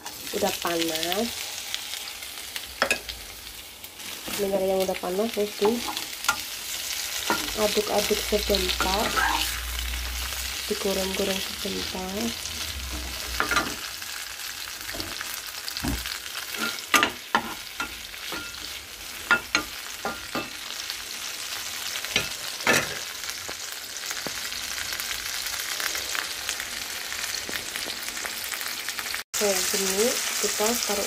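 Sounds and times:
tomatoes sizzling in hot oil: 0.0s - 31.0s
spatula scraping a pan: 8.7s - 9.9s, 16.4s - 20.6s.

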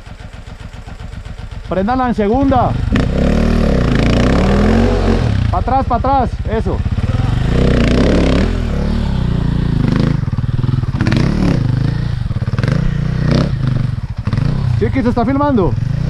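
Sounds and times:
dirt bike engine revving: 0.0s - 16.0s.

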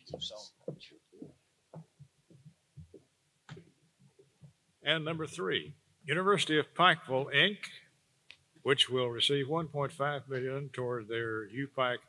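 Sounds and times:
footsteps on stage floor: 0.0s - 4.6s.

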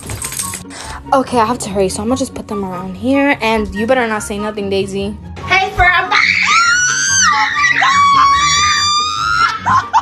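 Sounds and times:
person screaming: 6.2s - 9.6s.

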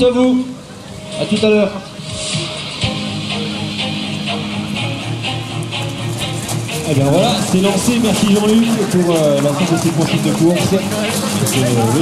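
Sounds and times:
guitar-led music with beat: 1.0s - 12.0s.

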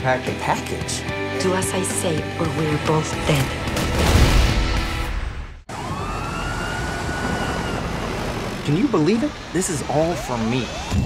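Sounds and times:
police siren wailing: 5.7s - 11.0s
vehicle engines rumbling: 5.7s - 11.0s.

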